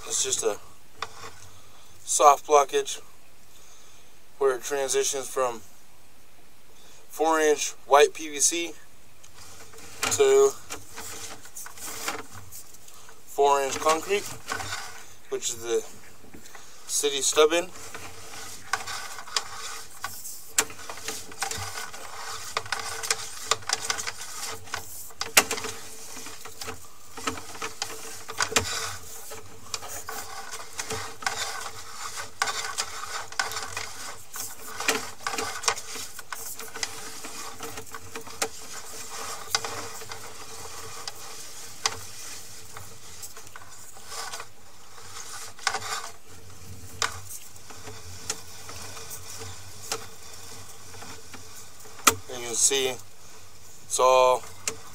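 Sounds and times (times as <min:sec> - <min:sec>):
cable scraping: 0:00.0 - 0:02.3, 0:09.2 - 0:54.9
faint steady hum: 0:00.0 - 0:54.9
cable clicking and rattling: 0:09.2 - 0:15.0, 0:15.6 - 0:54.9.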